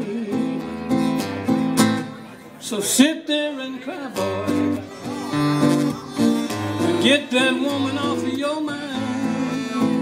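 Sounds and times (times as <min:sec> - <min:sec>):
acoustic guitar playing: 0:00.0 - 0:10.0.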